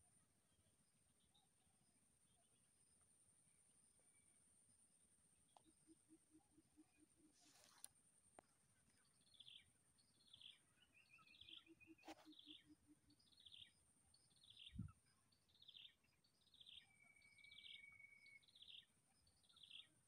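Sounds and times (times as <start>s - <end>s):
faint bird chirps: 0.0s - 20.0s.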